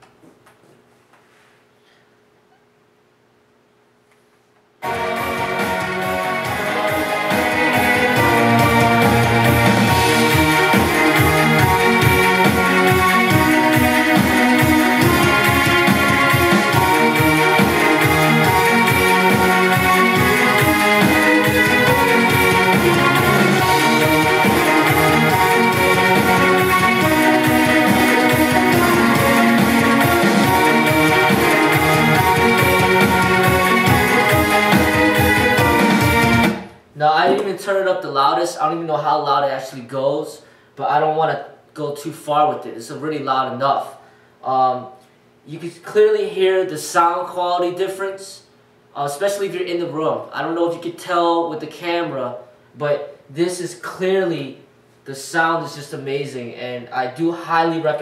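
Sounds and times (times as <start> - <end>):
loud music with steady beat: 4.8 - 37.4.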